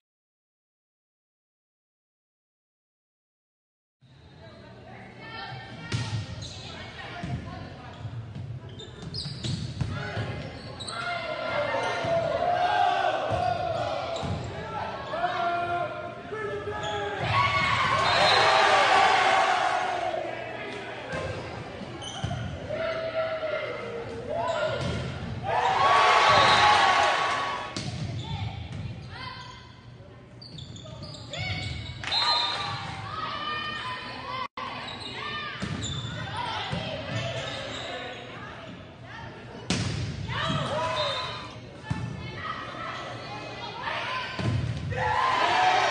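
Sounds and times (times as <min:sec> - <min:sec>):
shoes squeaking on gym floor: 0:07.9 - 0:09.8
people shouting and cheering: 0:11.1 - 0:21.4, 0:22.6 - 0:27.8, 0:43.8 - 0:45.9
crowd cheering and shouting: 0:17.2 - 0:20.3, 0:25.4 - 0:27.7, 0:44.9 - 0:45.9.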